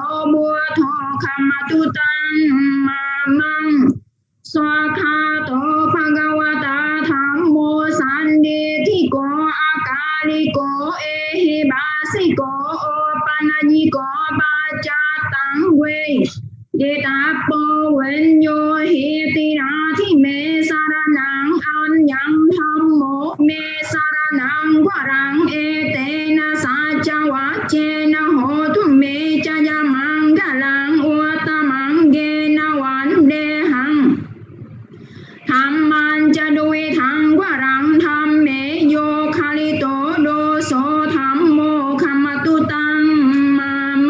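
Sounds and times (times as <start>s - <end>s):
high voice singing a chant: 0.0s - 34.4s, 35.4s - 44.0s.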